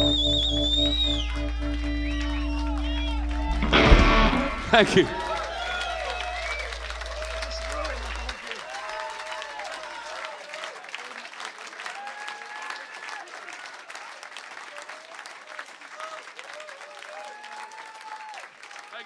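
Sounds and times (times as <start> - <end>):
low band note: 0.0 - 8.3
voices calling out: 0.0 - 8.6
audience clapping and cheering: 0.0 - 19.0.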